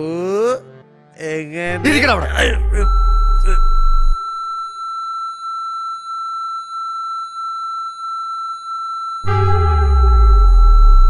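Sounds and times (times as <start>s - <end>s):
high-pitched electronic tone: 1.9s - 4.8s, 9.2s - 11.0s
deep low drone: 9.3s - 11.0s.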